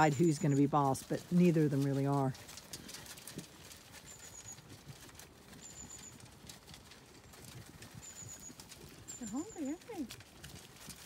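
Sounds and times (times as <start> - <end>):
sheep chewing grain: 0.0 - 11.0.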